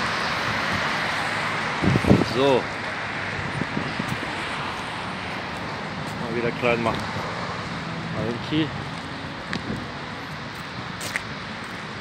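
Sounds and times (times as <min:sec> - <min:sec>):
city street traffic hum: 0:00.0 - 0:12.0.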